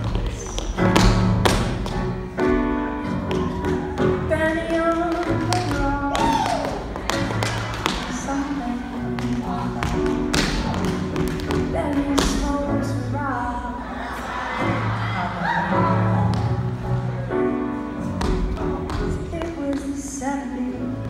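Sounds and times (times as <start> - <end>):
tap shoes on stage: 0.0 - 2.2, 3.2 - 12.6, 18.2 - 20.2
pop song with woman singing: 4.0 - 13.8, 18.3 - 21.0.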